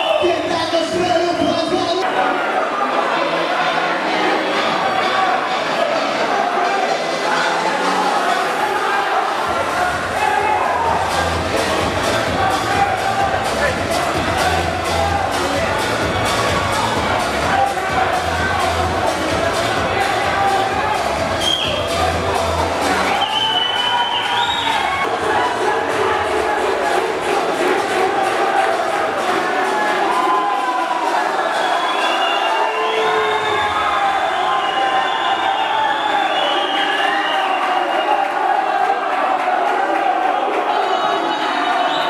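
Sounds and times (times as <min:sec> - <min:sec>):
crowd cheering and shouting: 0:00.0 - 0:42.0
music: 0:00.0 - 0:42.0.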